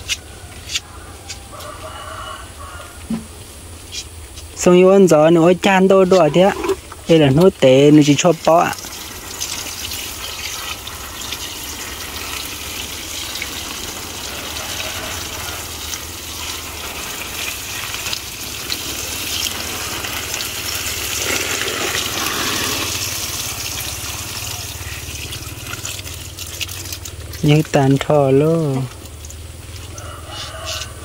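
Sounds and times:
watering can spraying water: 0:00.0 - 0:31.0.

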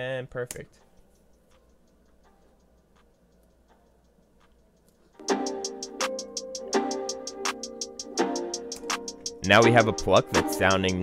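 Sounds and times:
faint light ticking clicks: 0:00.5 - 0:05.1.

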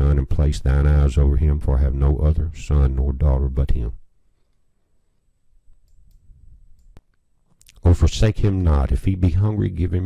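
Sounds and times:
man reading aloud: 0:00.0 - 0:04.0, 0:07.7 - 0:10.0
faint low hum: 0:00.0 - 0:10.0.

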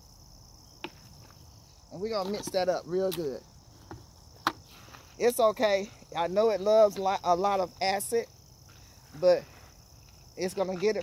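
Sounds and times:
crickets chirring: 0:00.0 - 0:11.0.

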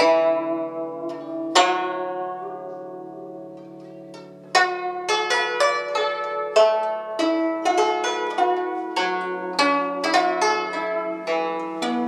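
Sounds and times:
plucked guzheng melody: 0:00.0 - 0:12.0.

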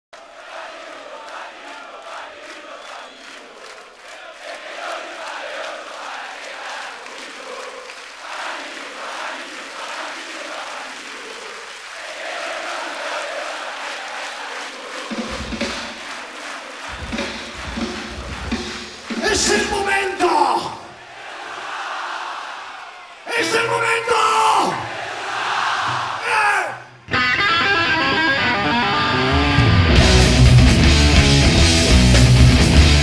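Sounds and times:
concert crowd chanting: 0:00.2 - 0:27.1
loud low band hits: 0:16.9 - 0:19.2.

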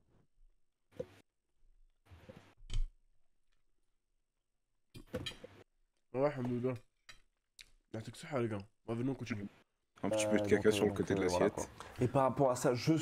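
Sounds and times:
man speaking: 0:08.0 - 0:13.0.

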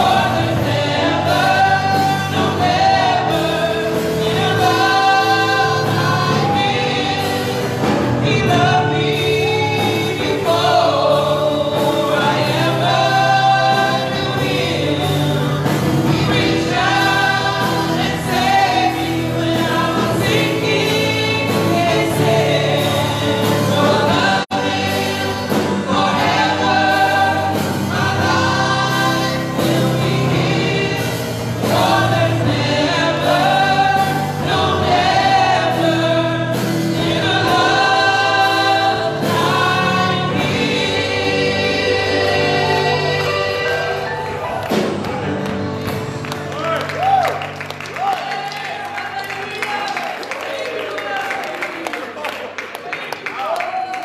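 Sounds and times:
group singing worship song: 0:00.0 - 0:51.5.

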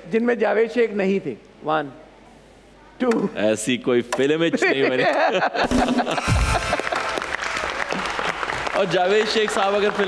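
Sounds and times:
audience applause: 0:06.0 - 0:10.0.

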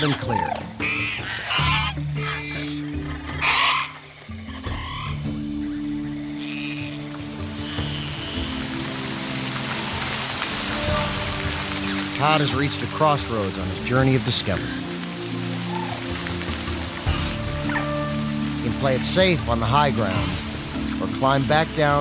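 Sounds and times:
high creature calls: 0:00.0 - 0:04.0
orchestral score: 0:04.8 - 0:22.0
stream and waterfall rushing: 0:06.5 - 0:22.0.

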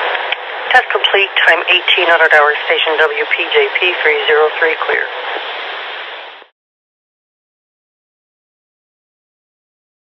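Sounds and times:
radio static hiss: 0:00.0 - 0:06.5.

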